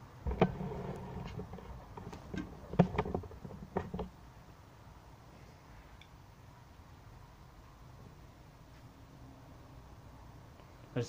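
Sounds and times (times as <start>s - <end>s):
camera handling rumble: 0.2s - 4.1s.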